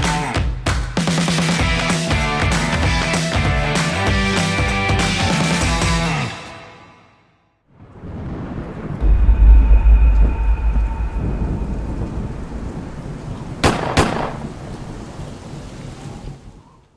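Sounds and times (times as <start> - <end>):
thunder cracks: 7.7 - 15.5
thunder rumble: 7.7 - 16.7
faint held tone: 9.0 - 13.0.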